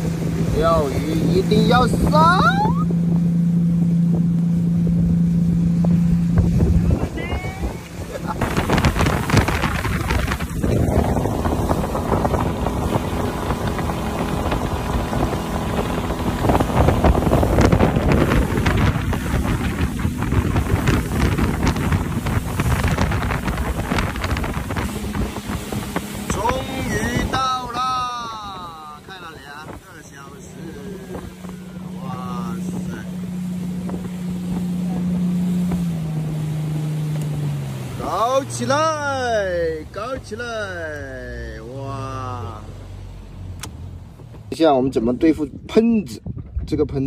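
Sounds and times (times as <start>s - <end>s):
wind on microphone: 0.0s - 38.0s, 44.2s - 47.0s
water rushing past hull: 0.0s - 46.8s
boat engine running: 0.0s - 47.0s.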